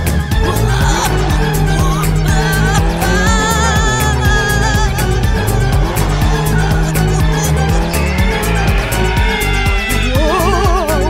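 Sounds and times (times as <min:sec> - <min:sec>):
music with steady beat: 0:00.0 - 0:11.0
cartoon tire squeal effect: 0:00.7 - 0:10.8.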